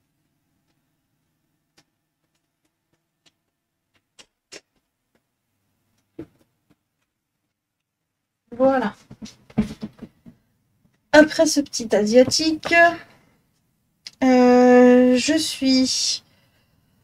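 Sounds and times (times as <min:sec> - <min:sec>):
woman speaking: 0:08.5 - 0:09.0, 0:11.2 - 0:13.1, 0:14.2 - 0:16.2.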